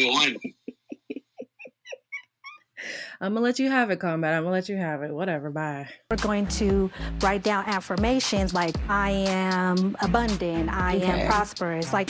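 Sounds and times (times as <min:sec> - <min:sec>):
woman laughing breathily: 0:00.2 - 0:03.1.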